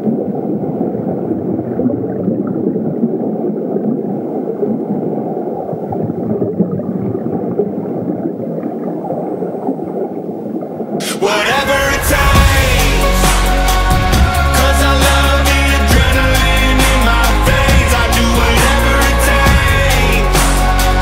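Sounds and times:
muffled low rumbling: 0:11.5 - 0:15.0.

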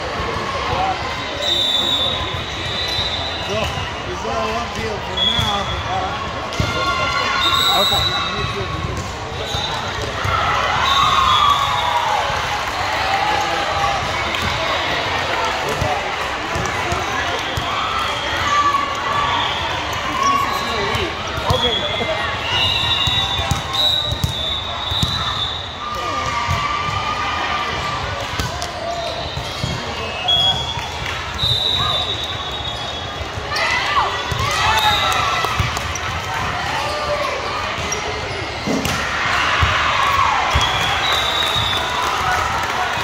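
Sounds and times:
sneakers squeaking on floor: 0:20.0 - 0:25.8, 0:29.0 - 0:30.7, 0:31.4 - 0:38.8.

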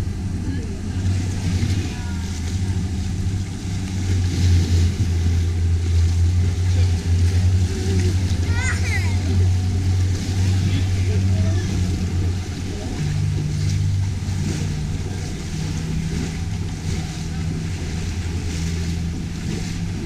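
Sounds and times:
boat engine droning: 0:00.0 - 0:20.0.

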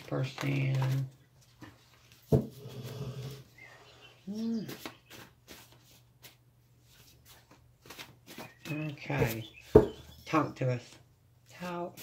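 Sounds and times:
cards being shuffled: 0:00.0 - 0:02.2, 0:04.6 - 0:09.4.

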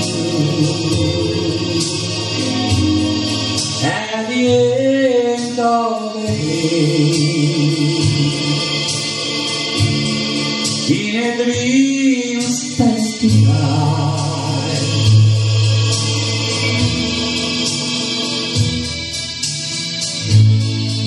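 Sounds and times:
man singing a slow ballad: 0:00.0 - 0:10.0, 0:10.8 - 0:17.3
recorded musical accompaniment: 0:00.0 - 0:21.0.

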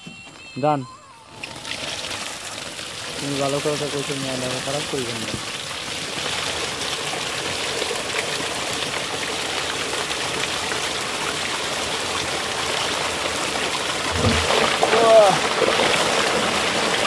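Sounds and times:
water pouring into a tank: 0:01.3 - 0:17.0.

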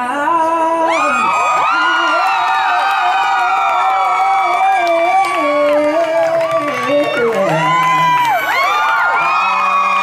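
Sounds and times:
crowd screaming and cheering: 0:00.0 - 0:10.0
man singing long note: 0:04.2 - 0:10.0.

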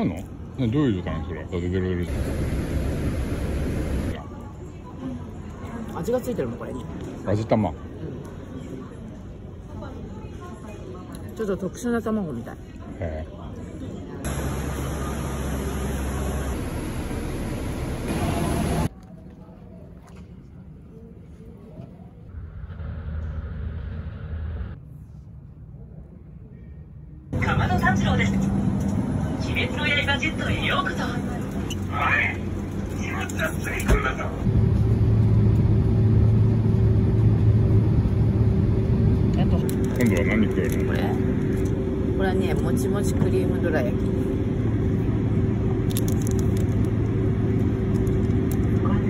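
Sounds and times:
low rumble of terminal noise: 0:00.0 - 0:11.6, 0:12.6 - 0:49.0
airliner cabin drone: 0:02.0 - 0:04.5, 0:14.2 - 0:18.9, 0:20.9 - 0:49.0
plastic wrapper being torn open: 0:45.9 - 0:46.9.

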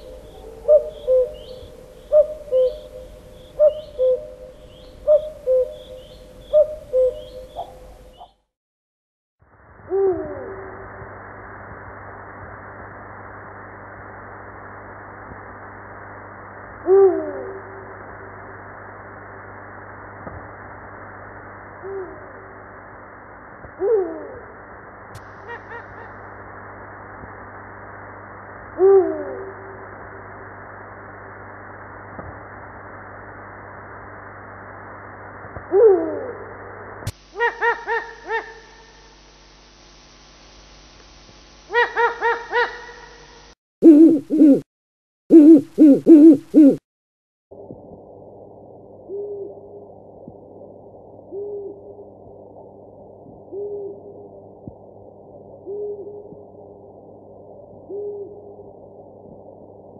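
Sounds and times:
owl hooting: 0:00.0 - 0:08.4, 0:09.8 - 0:10.8, 0:16.8 - 0:18.0, 0:21.8 - 0:22.5, 0:23.8 - 0:24.5, 0:25.2 - 0:26.3, 0:28.8 - 0:29.8, 0:35.7 - 0:36.5, 0:37.3 - 0:39.1, 0:41.7 - 0:44.7, 0:45.3 - 0:46.8, 0:49.1 - 0:49.9, 0:51.3 - 0:52.0, 0:53.4 - 0:54.3, 0:55.6 - 0:56.5, 0:57.8 - 0:58.7
recording hiss: 0:00.0 - 0:08.5, 0:09.4 - 0:44.7, 0:45.3 - 0:46.8.

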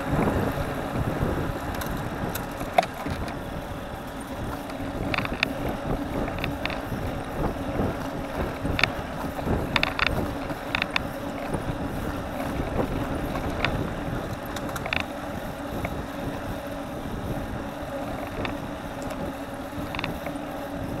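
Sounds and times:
bicycle clicks and rattles: 0:00.0 - 0:21.0
bicycle road noise: 0:00.0 - 0:21.0
wind rushing over microphone: 0:00.0 - 0:21.0.

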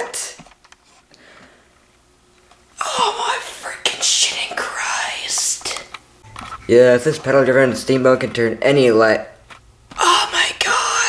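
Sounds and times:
person whispering: 0:02.8 - 0:05.8, 0:10.0 - 0:11.0.

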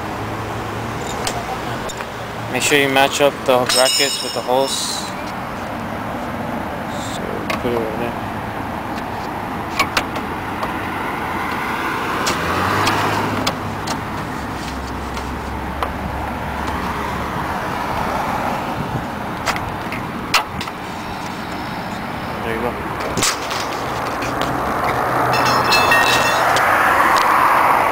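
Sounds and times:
road traffic going by: 0:00.0 - 0:27.9.

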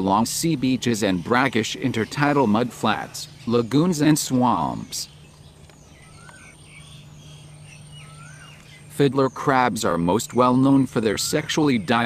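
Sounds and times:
birds chirping: 0:00.0 - 0:12.0
low steady hum: 0:00.0 - 0:12.0.

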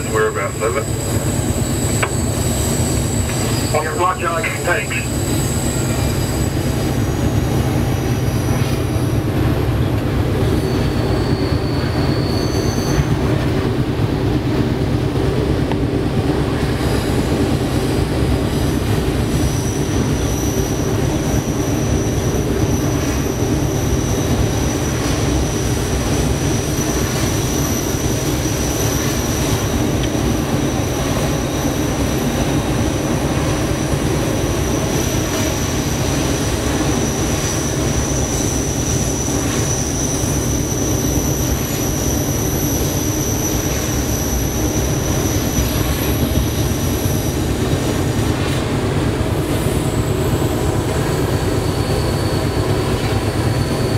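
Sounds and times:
steady high squeal: 0:00.0 - 0:13.5, 0:18.6 - 0:53.9
diesel locomotive engine rumbling: 0:00.0 - 0:53.9.

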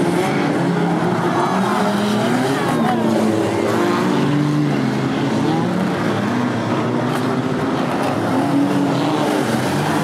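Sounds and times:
race car engines running hard: 0:00.0 - 0:10.0.

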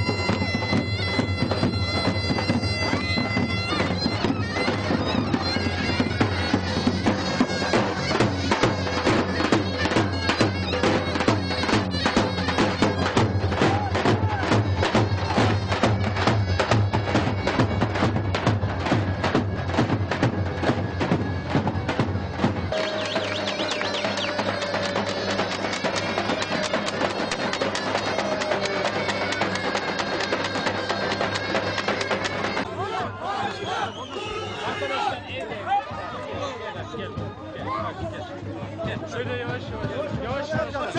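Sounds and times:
piercing reed melody: 0:00.0 - 0:32.6
lighter drum beats: 0:00.0 - 0:32.7.

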